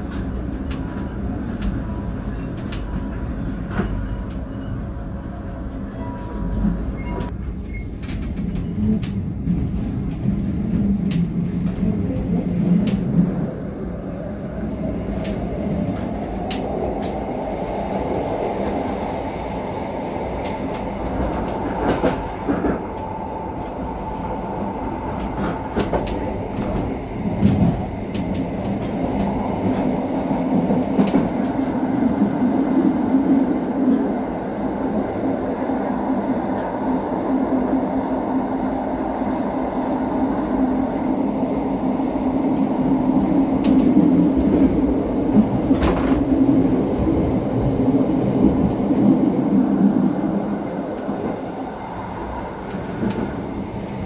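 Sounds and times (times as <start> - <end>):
train wheels rumbling on rail: 0.0 - 54.0.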